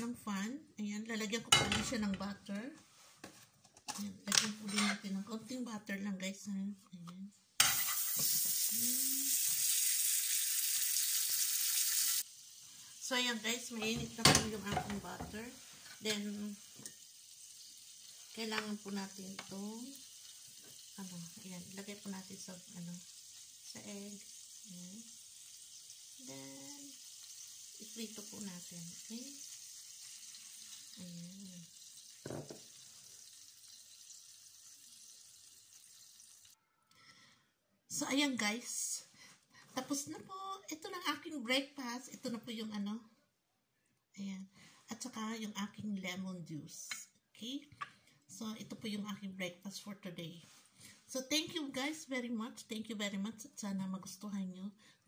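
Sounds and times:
butter sizzling in frying pan: 7.6s - 36.6s.

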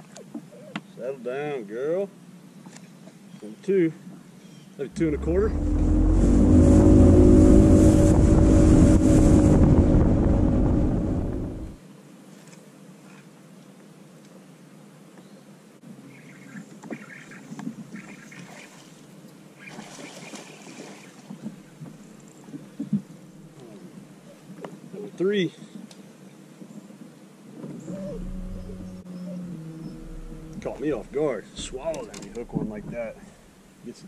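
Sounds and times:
boat motor running: 4.9s - 11.8s, 27.9s - 33.6s
wind rumble on microphone: 4.9s - 11.8s, 26.7s - 33.8s.

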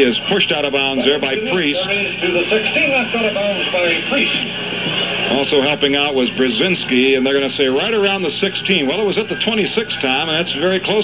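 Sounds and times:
man talking on radio broadcast: 0.0s - 11.0s
steady hiss: 0.0s - 11.0s.

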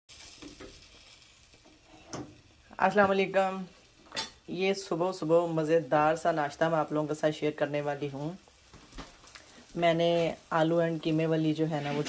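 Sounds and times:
room noise hiss: 0.2s - 12.0s.

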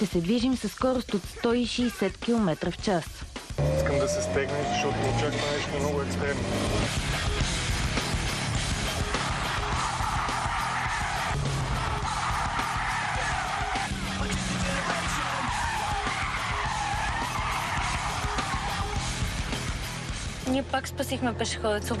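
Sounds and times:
background music: 0.0s - 22.0s
tyres skidding and squealing: 3.6s - 7.4s, 9.1s - 19.8s.

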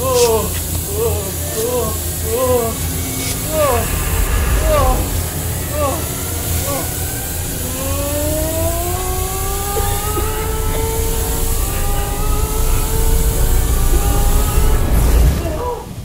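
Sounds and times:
deep rumble with hiss: 0.0s - 16.0s
long rising tone: 1.4s - 15.7s.

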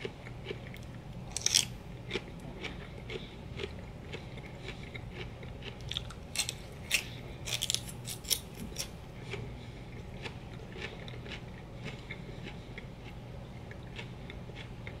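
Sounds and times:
celery crunching and chewing: 0.0s - 15.0s.

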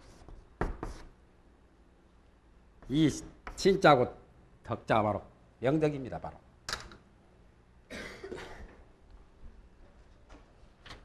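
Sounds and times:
person coughing: 7.9s - 8.8s.

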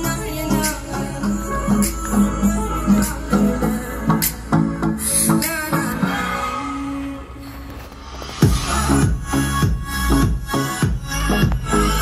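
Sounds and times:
electronic music with heavy bass: 0.0s - 12.0s.

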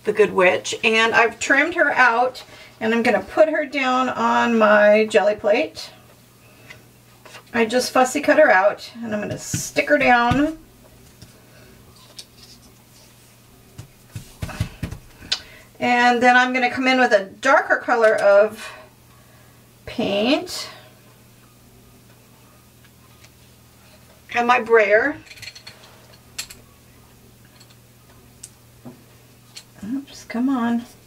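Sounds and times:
hands patting paper on a plate: 12.3s - 15.3s.

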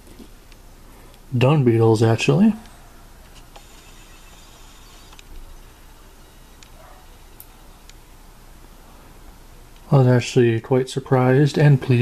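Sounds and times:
low hiss: 0.0s - 12.0s.

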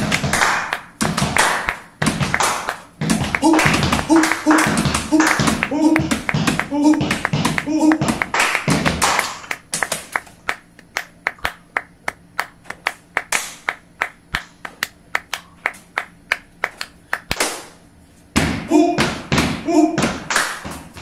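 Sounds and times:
hand claps: 0.0s - 17.8s, 20.1s - 21.0s.

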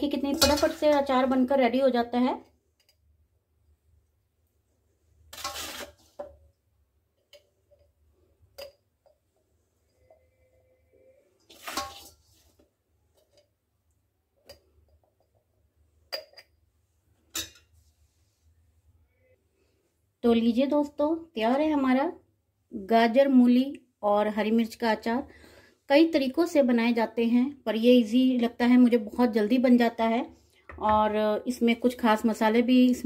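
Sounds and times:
metal spoon scraping steel pan: 5.3s - 6.4s, 9.8s - 12.6s.

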